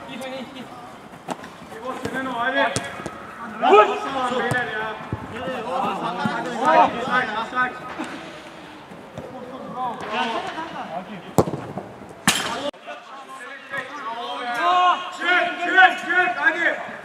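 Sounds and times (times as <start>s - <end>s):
ball being kicked: 2.0s - 3.2s, 11.4s - 12.5s.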